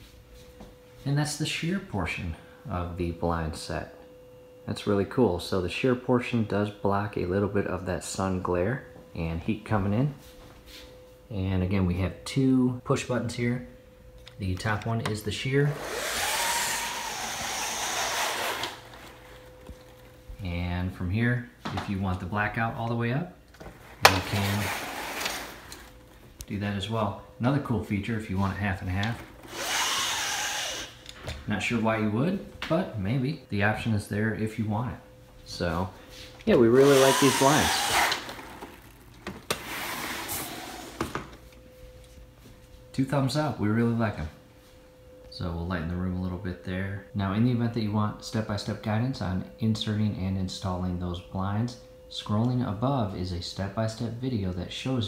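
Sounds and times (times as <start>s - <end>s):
motorized window shade whirring: 14.6s - 20.3s, 23.6s - 26.4s, 27.6s - 31.2s, 36.1s - 41.6s
blind clicking: 15.8s - 20.2s, 23.8s - 26.5s, 36.8s - 41.6s
blind fabric sliding hiss: 15.8s - 20.2s, 23.6s - 26.4s, 36.1s - 42.3s.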